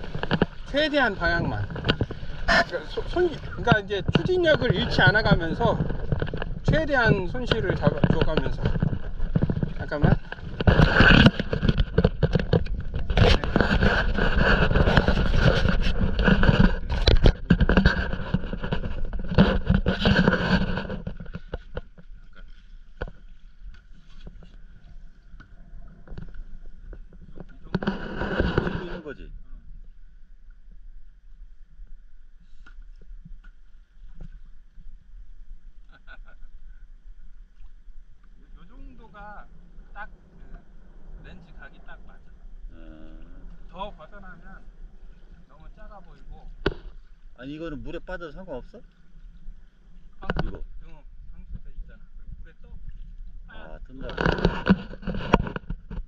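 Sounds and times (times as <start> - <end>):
water splashing and lapping: 0.0 - 28.9
paddle strokes in water: 0.0 - 29.0.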